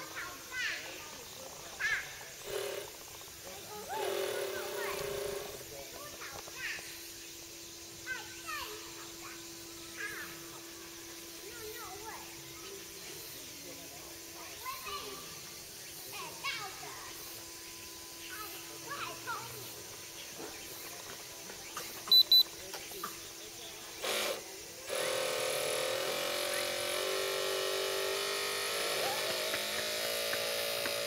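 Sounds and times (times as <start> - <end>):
distant voices calling: 0.0 - 31.0.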